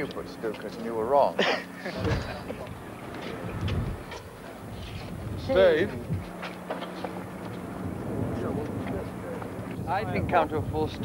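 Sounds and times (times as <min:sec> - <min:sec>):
low mechanical hum: 0:00.0 - 0:11.0
wind: 0:00.0 - 0:11.0.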